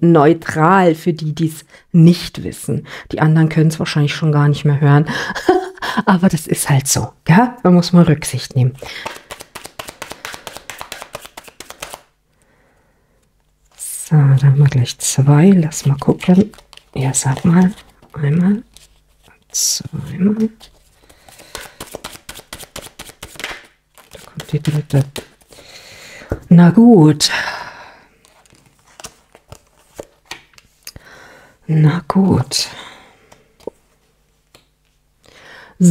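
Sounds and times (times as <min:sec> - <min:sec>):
cards being shuffled: 0:08.7 - 0:12.1, 0:15.6 - 0:25.6, 0:28.2 - 0:30.8.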